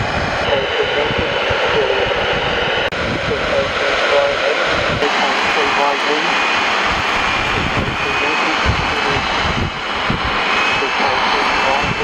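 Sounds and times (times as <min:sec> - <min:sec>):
radio hiss and static: 0:00.0 - 0:12.0
faint broken radio voice: 0:00.4 - 0:06.4, 0:07.6 - 0:09.4, 0:10.6 - 0:12.0.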